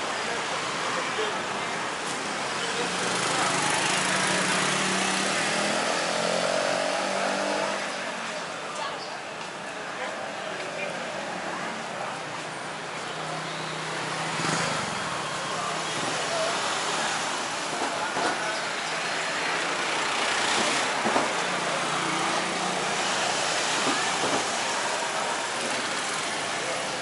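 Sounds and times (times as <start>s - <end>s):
road traffic noise: 0.0s - 27.0s.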